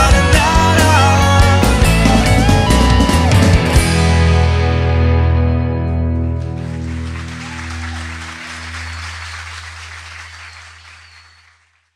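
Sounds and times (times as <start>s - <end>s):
rock band final chord ringing: 0.0s - 8.2s
audience applauding: 6.2s - 11.9s.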